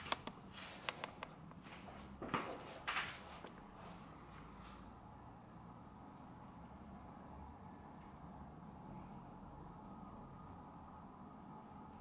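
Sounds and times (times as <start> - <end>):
rustling shuffles: 0.0 - 4.9.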